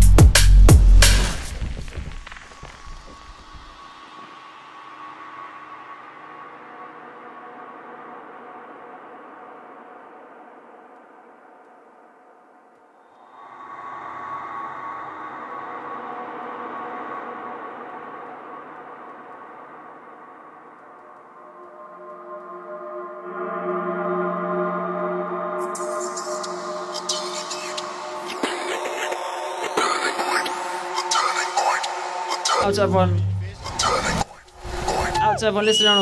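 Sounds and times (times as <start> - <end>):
drum and bass beats echoing: 0.0 - 3.8
ambient synth pad: 3.7 - 34.5.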